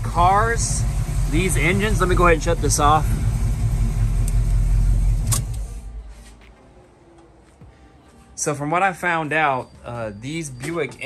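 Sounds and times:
car engine idling: 0.0 - 6.1.

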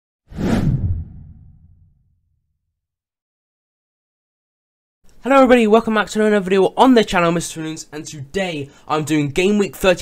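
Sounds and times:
whoosh with deep tail: 0.3 - 2.1.

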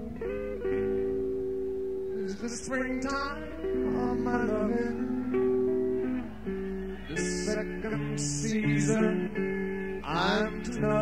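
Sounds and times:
ringing guitar chords: 0.0 - 11.0.

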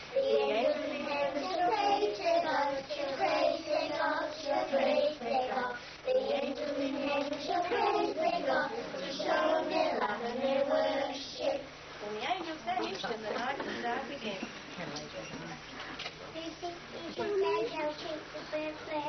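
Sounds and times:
children singing together: 0.0 - 11.7.

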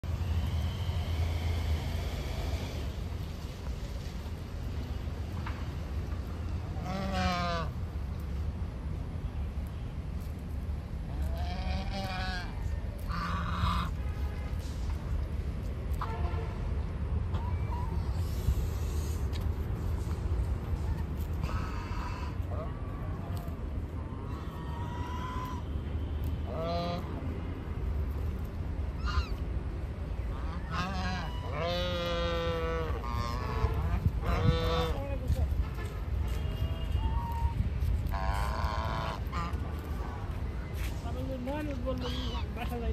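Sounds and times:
steady low rumble: 0.0 - 42.9
geese honking: 6.8 - 7.8, 11.1 - 14.0, 21.4 - 22.7, 24.1 - 25.7, 26.4 - 27.3, 29.0 - 29.4, 30.3 - 35.0, 36.9 - 40.3, 41.9 - 42.7
goose calling: 6.8 - 7.8, 11.1 - 14.0, 21.4 - 22.7, 24.1 - 25.7, 26.4 - 27.2, 29.0 - 29.4, 30.3 - 35.1, 37.0 - 40.3, 41.9 - 42.8.

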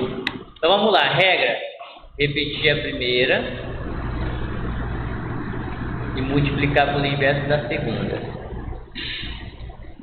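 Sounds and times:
motor humming: 2.0 - 10.0.

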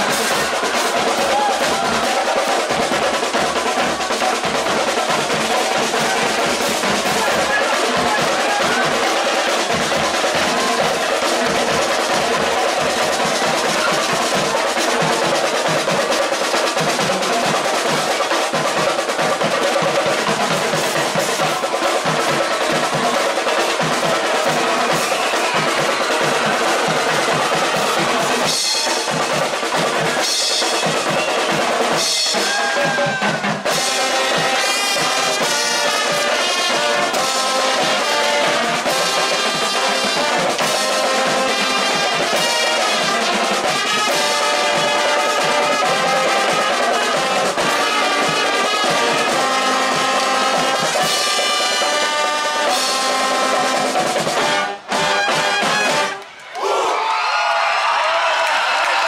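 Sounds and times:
snare and bass drums: 0.0 - 56.2
marching band playing: 0.0 - 56.4
brass instruments: 0.0 - 59.0.

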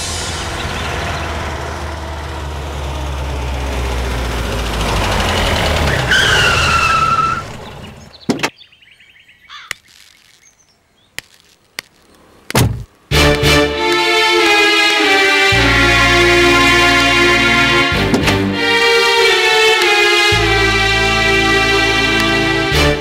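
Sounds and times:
brake squeal: 0.0 - 8.3
car engine running: 0.0 - 8.3, 11.8 - 23.0
sharp knocks: 12.5 - 13.4
car door shutting: 18.0 - 18.5.

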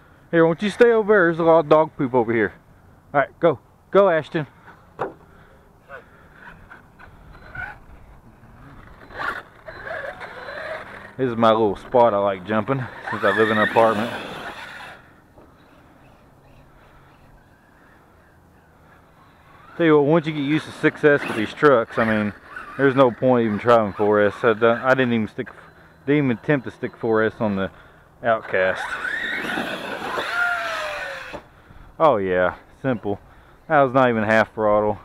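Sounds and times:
electric motor whining: 6.3 - 27.6, 28.2 - 31.5.

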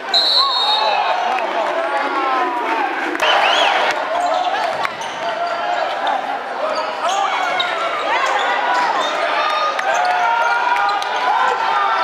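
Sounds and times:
voices echoing in gym: 0.0 - 12.0.

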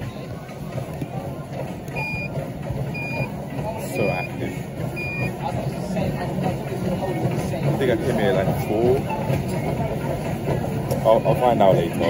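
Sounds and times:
high-pitched electronic beeps: 1.9 - 2.3, 3.0 - 3.3, 5.0 - 5.3.

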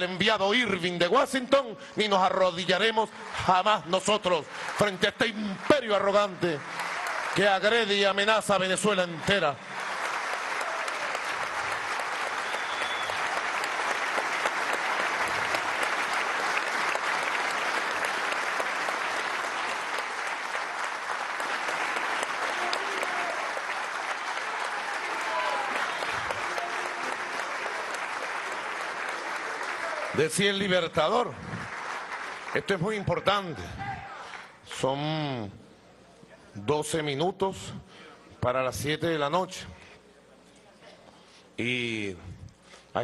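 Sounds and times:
large audience applauding: 2.7 - 34.5.

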